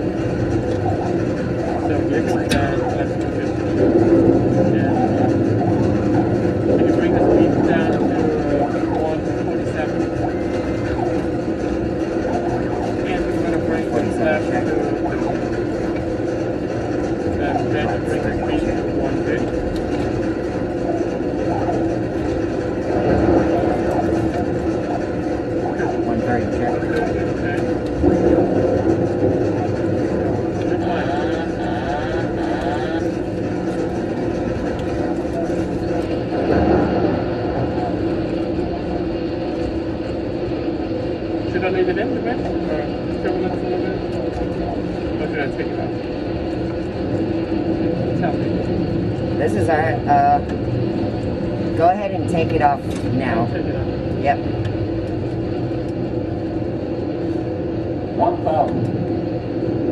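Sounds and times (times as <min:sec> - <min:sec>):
simulated engine and airflow drone: 0:00.0 - 0:59.9
steady hum tones: 0:00.0 - 0:59.9.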